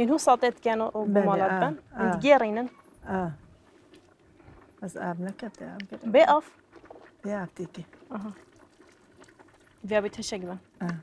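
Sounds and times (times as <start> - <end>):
water pouring and trickling: 0.0 - 11.0.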